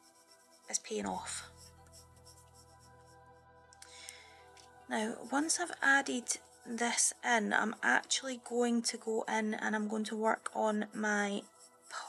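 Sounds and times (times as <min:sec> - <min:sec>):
pencil scratching on paper: 0:00.0 - 0:03.2, 0:04.9 - 0:12.0
soft background music: 0:00.0 - 0:12.0.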